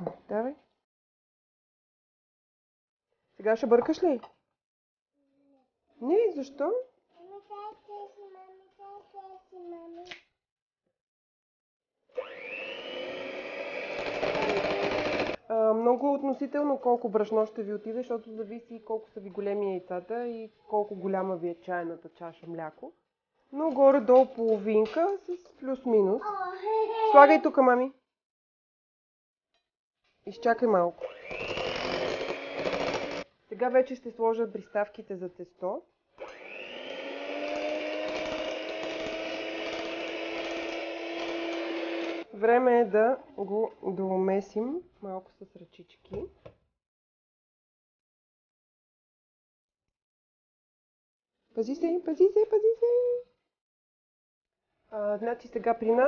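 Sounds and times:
electric hand mixer whining: 12.1 - 15.4, 31.0 - 33.3, 36.2 - 42.3.

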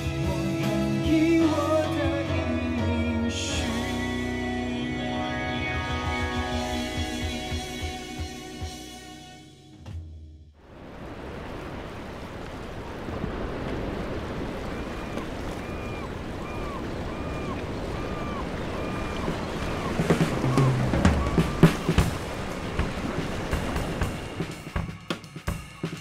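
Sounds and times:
drum and cymbal hits: 6.1 - 9.2, 19.8 - 26.0
sea waves on beach: 10.6 - 26.0.

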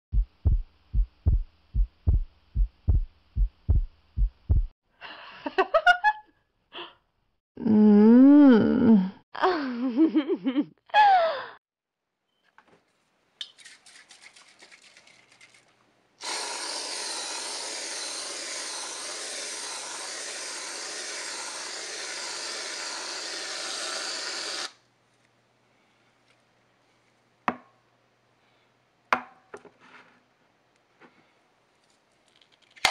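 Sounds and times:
heartbeat thumps: 0.1 - 4.8
whipped cream can hissing: 16.2 - 24.8.

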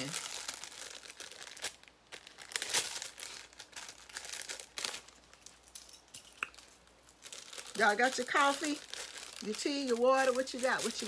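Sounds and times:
packaging crinkling: 0.0 - 11.0.

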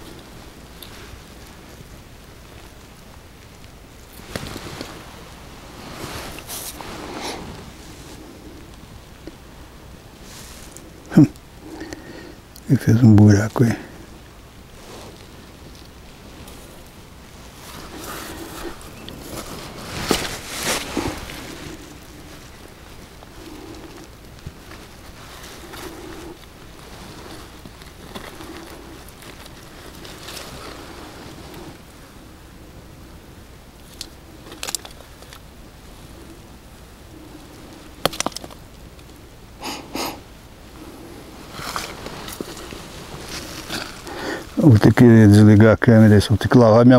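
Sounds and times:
hand scraping in damp soil: 0.0 - 32.4, 39.6 - 46.9
weeds rustling: 0.0 - 46.8.

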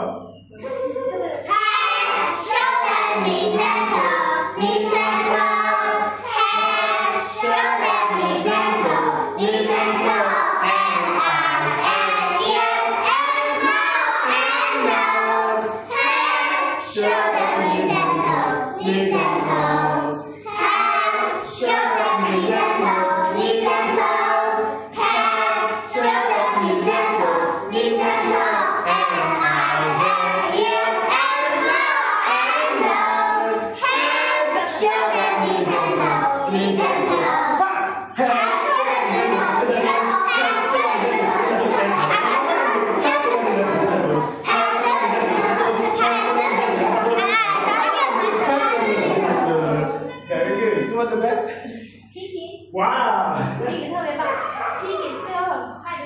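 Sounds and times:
children singing together: 0.0 - 50.8.

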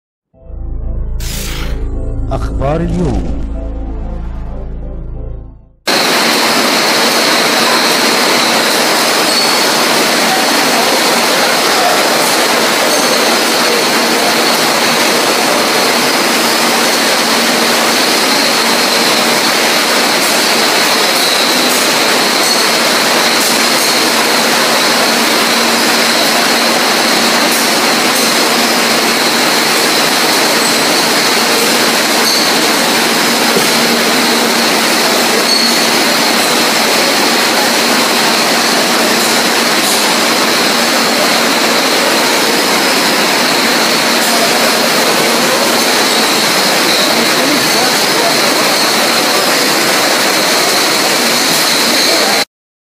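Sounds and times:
bottling machinery din: 0.4 - 52.4.

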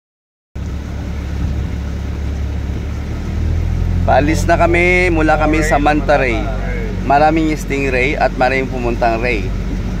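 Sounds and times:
boat engine rumbling: 0.6 - 10.0
water noise: 0.6 - 10.0
wind noise: 1.2 - 3.7.

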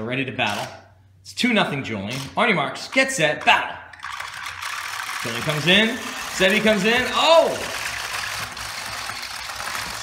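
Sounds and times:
small motors running: 4.0 - 10.0.

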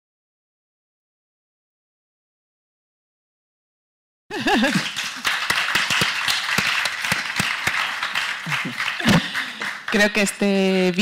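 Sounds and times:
audience applauding: 4.3 - 11.0.

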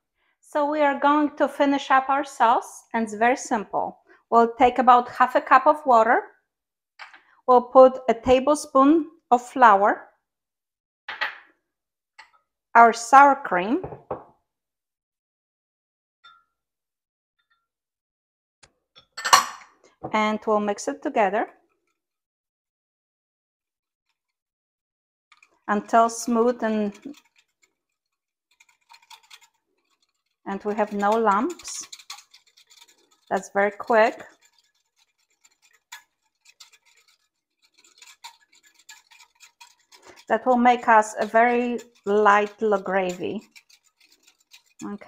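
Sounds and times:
utensil clinking against a bowl: 25.3 - 45.0.

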